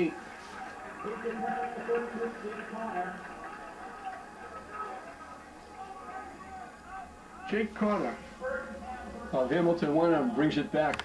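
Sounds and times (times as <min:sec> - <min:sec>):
muffled television commentary voices: 0:00.0 - 0:11.0.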